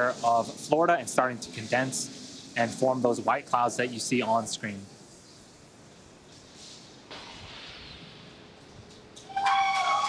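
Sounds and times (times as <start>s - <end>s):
steady venting hiss: 0.0s - 10.0s.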